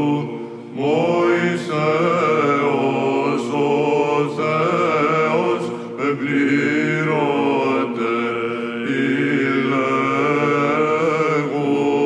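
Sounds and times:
held vocal drone: 0.0 - 12.0
men chanting: 0.8 - 12.0.

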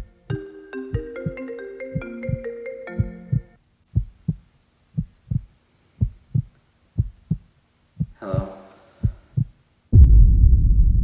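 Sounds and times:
heartbeat low thumps: 3.0 - 11.0
loud deep rumble: 9.9 - 11.0.

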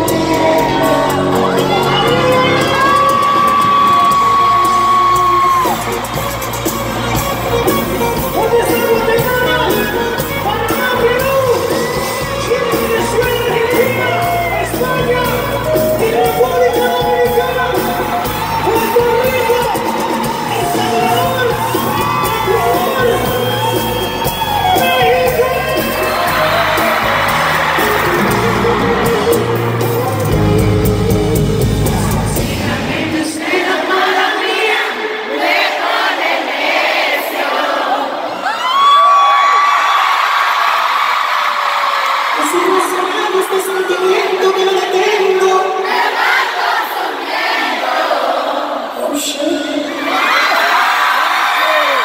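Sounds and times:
live band music: 0.0 - 34.8
crowd: 0.0 - 52.0.

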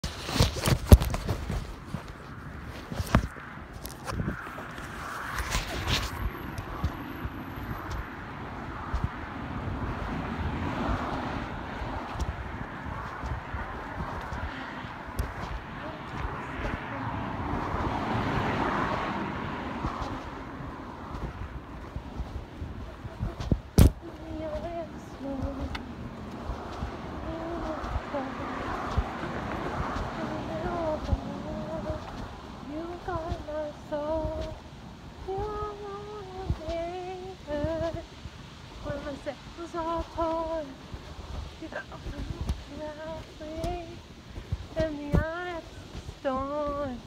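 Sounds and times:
muffled indistinct sound: 0.0 - 8.2, 8.8 - 47.0.

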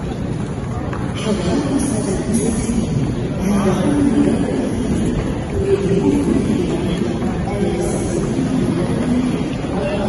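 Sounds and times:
indistinct voices of travellers: 0.0 - 10.0.

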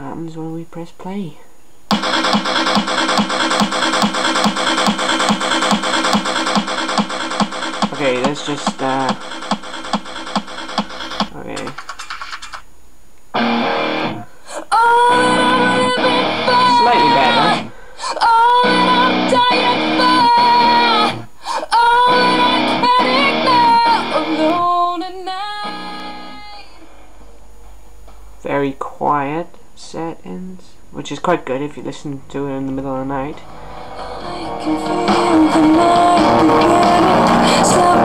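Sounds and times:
music from small speakers: 15.1 - 17.6, 18.6 - 21.2, 22.1 - 24.6, 33.5 - 38.0.

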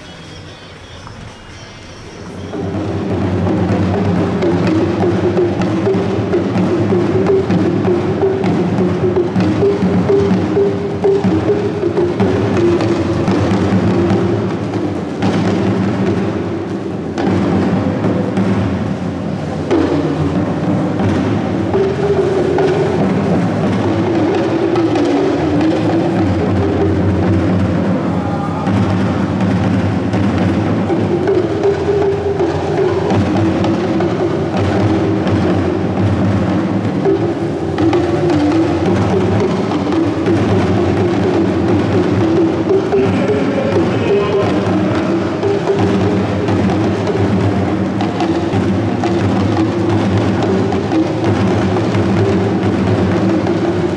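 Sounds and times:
talking drums dance rhythm: 0.0 - 53.9.

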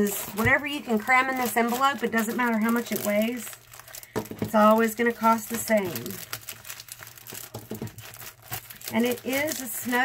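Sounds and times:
paper and plastic crinkling: 0.0 - 10.0.

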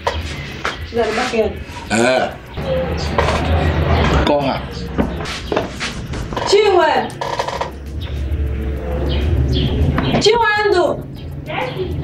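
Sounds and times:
steady low rumble: 0.3 - 12.0.

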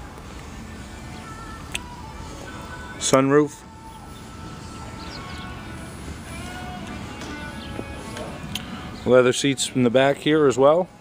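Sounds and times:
faint background music: 0.0 - 11.0
low steady hum: 0.0 - 11.0.

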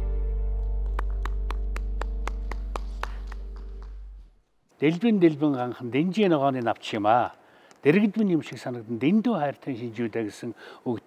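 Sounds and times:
sharp hand claps: 0.8 - 4.1.

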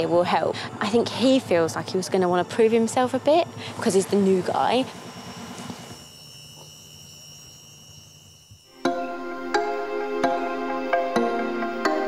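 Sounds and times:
insect chirring: 0.0 - 10.5
music with plucked notes: 8.8 - 12.0.

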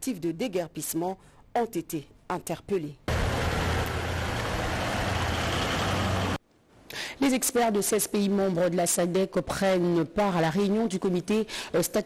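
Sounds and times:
car engine hum: 3.1 - 6.4.

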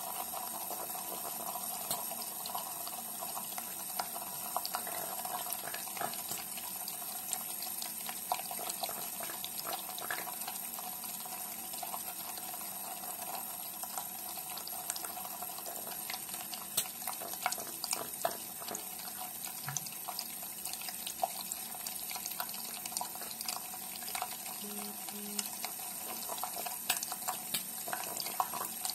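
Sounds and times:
tap water running into sink: 0.0 - 28.9.

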